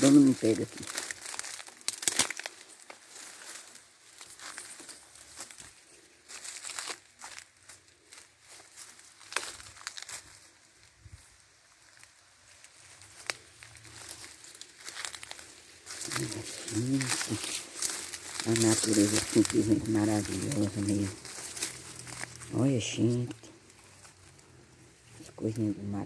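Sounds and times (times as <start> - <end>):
dry grass rustling and crackling: 0.0 - 26.0.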